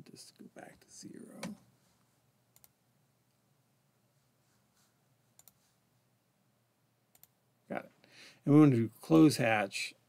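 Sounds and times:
computer mouse clicks: 2.6 - 2.8, 5.4 - 5.6, 7.1 - 7.4.

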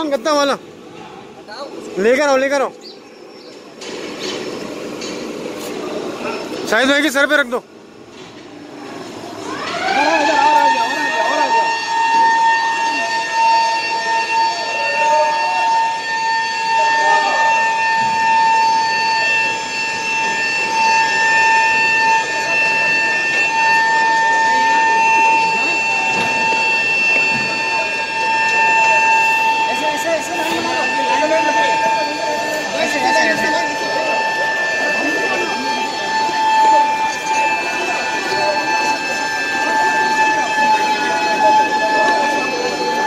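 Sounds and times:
alarm siren: 3.5 - 43.0.

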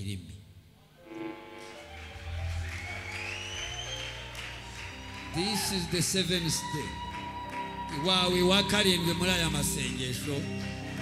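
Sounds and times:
live band holding a chord: 0.9 - 11.0.

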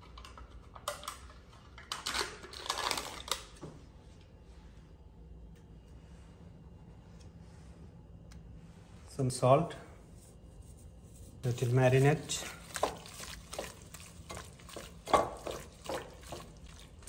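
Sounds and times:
faint low hum: 0.0 - 17.0.

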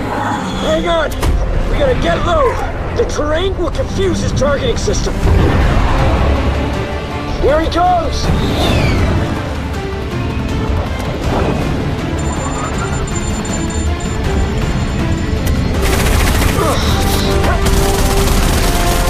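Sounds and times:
dramatic orchestral score: 0.0 - 19.0.

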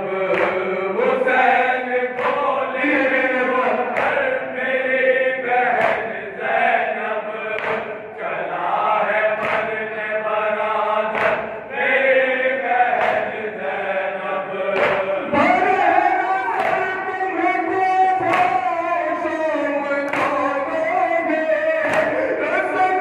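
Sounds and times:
men chanting in unison: 0.0 - 23.0.

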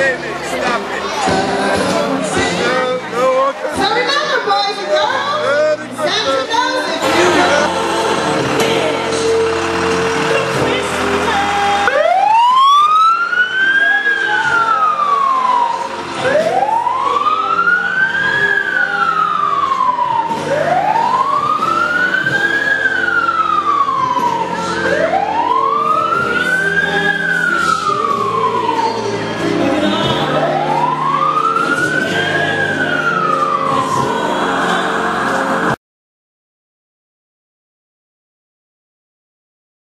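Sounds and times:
fire truck siren wailing: 7.0 - 35.8.

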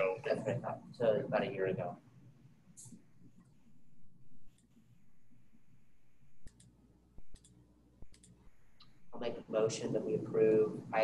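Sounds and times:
sharp small clicks: 6.4 - 9.0.

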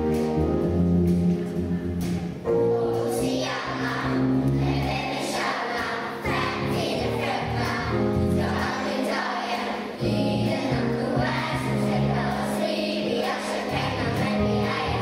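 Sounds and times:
deep bass line: 0.0 - 3.0
instrumental accompaniment: 0.0 - 15.0
children's choir singing: 2.5 - 15.0.

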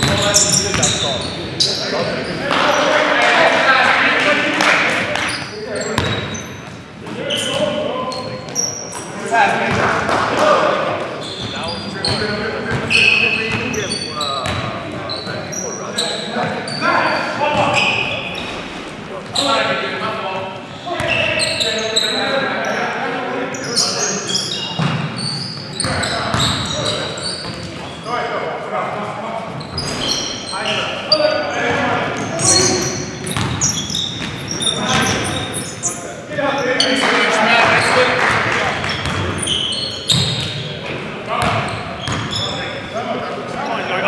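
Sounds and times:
shoes squeaking: 0.0 - 3.1, 5.1 - 9.2, 11.1 - 19.7, 20.7 - 22.8, 23.5 - 28.2, 29.4 - 38.1, 38.8 - 44.0.

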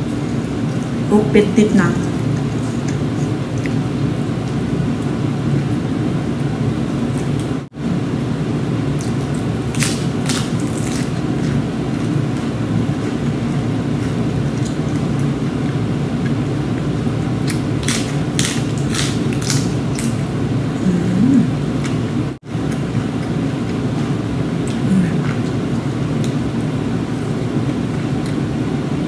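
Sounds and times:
steady low hum: 0.0 - 29.0
person chewing food: 2.2 - 5.8, 8.9 - 20.3.

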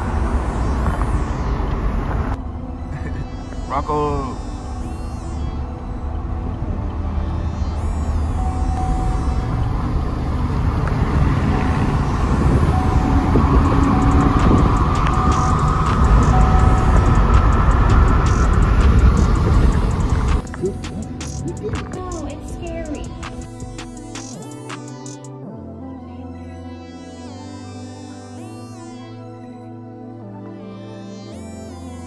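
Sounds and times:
wind and road rumble in car: 0.0 - 2.4, 6.0 - 22.2
music playing: 0.0 - 32.0.

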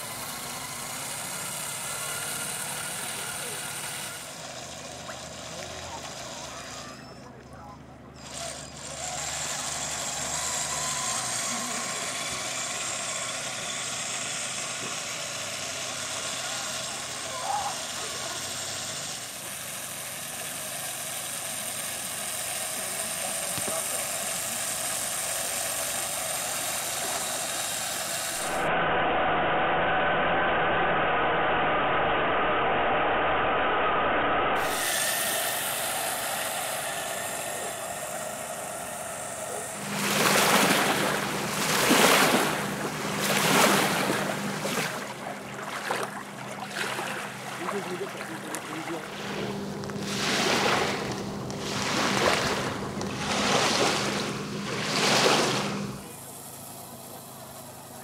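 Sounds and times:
toy truck motor whine: 0.0 - 30.7, 34.6 - 58.0.

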